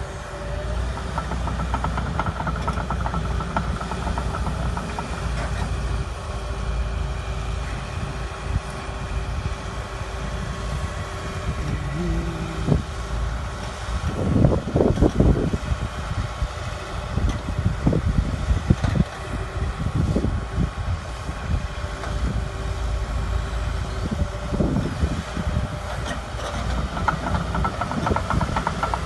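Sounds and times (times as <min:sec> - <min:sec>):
excavator diesel engine running: 0:00.0 - 0:29.0.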